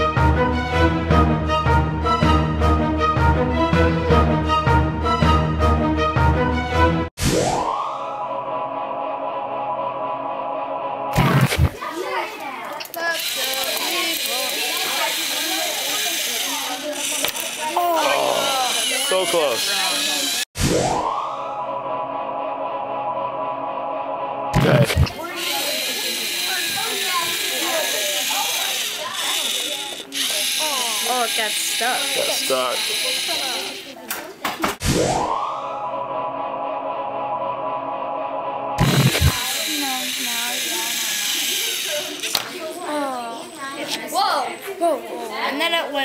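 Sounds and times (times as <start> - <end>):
children talking: 11.7 - 20.5, 25.1 - 34.8, 39.3 - 46.0
small electric motor whining: 13.0 - 20.5, 25.2 - 33.9, 39.0 - 42.4.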